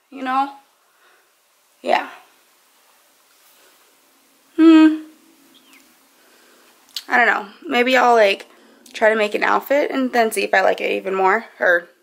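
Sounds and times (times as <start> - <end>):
person humming: 4.5 - 5.2
faint falling chirp: 4.5 - 6.0.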